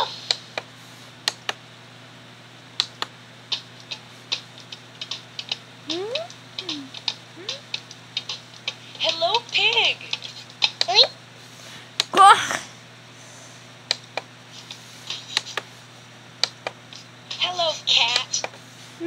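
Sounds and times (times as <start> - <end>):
sharp clicks: 2.8 - 5.6, 13.9 - 14.3.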